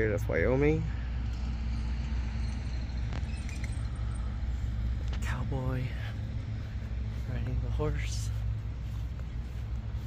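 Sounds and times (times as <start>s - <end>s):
low rumble of street traffic: 0.0s - 10.0s.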